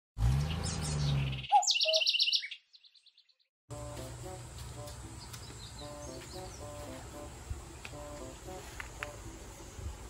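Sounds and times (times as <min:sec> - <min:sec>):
bird chirping: 0:00.4 - 0:03.5, 0:04.8 - 0:07.3
outdoor ambience: 0:03.7 - 0:10.0.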